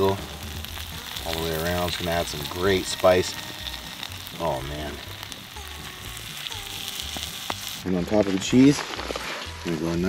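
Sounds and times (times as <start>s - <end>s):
food sizzling in a skillet: 0.0s - 10.0s.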